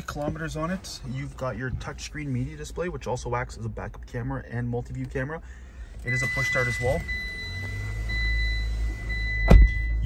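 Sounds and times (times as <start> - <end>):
car engine starting and idling: 0.0 - 10.0.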